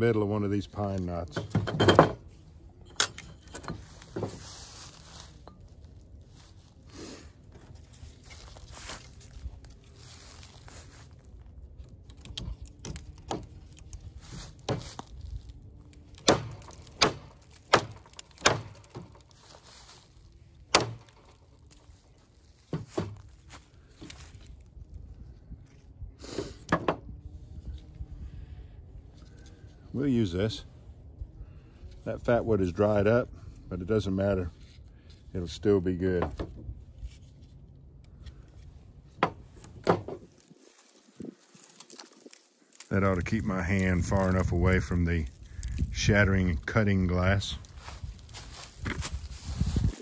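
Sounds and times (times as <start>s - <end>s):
rustling of bark and wood: 0.0s - 50.0s
sharp wooden knocks: 16.2s - 19.2s, 20.7s - 21.2s, 39.2s - 40.3s.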